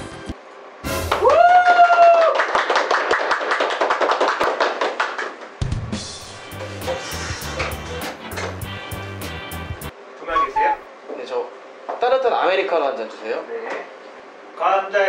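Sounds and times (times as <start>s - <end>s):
group clapping: 0.9s - 5.8s, 6.5s - 9.4s
music with drum beat and bass: 5.6s - 9.9s.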